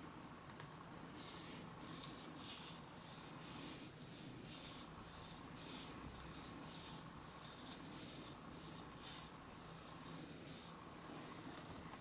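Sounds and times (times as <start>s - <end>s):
paintbrush brushing over paper: 1.2s - 10.8s.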